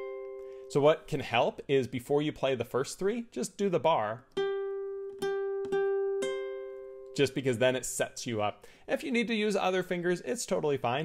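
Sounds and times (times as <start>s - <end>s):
ukulele fingerpicked notes: 0.0s - 0.7s, 4.0s - 7.4s.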